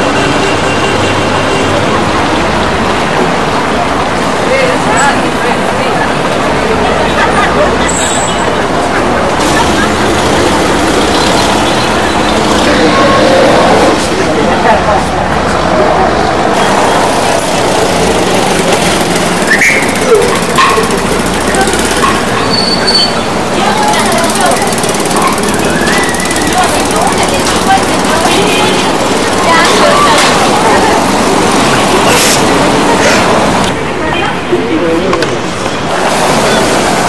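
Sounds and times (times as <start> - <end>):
many voices talking: 0.0 - 37.0
vehicle engines running: 0.0 - 37.0.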